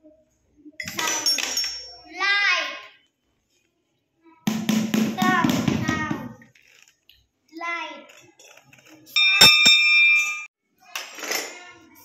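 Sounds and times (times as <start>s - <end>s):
toy xylophone notes: 9.2s - 10.2s.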